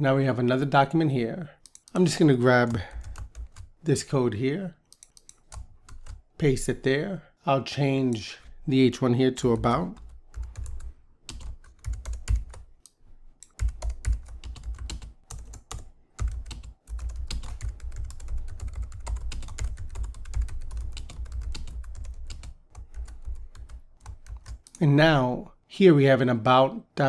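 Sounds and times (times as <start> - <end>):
typing on computer keyboard: 1.6 - 2.0, 2.6 - 3.7, 4.9 - 6.2, 10.0 - 12.6, 13.4 - 24.8.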